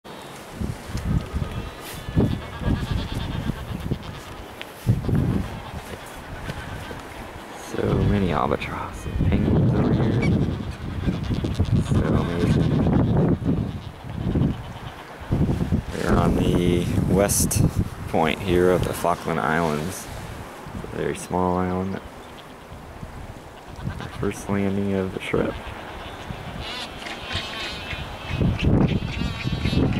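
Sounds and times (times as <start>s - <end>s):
steady outdoor hiss: 0.1s - 29.9s
seabird and penguin colony calls: 0.7s - 20.3s, 21.0s - 22.8s, 23.4s - 29.9s.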